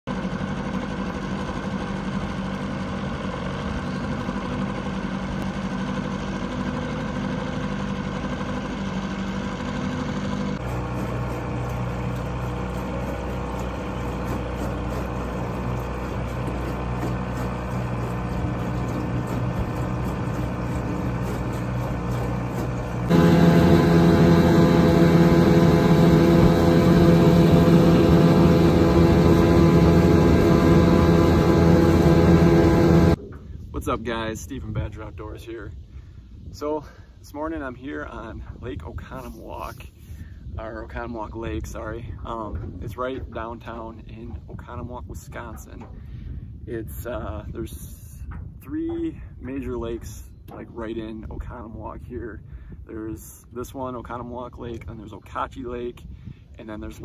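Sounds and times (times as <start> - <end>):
small boat motor running: 0.1 - 33.2.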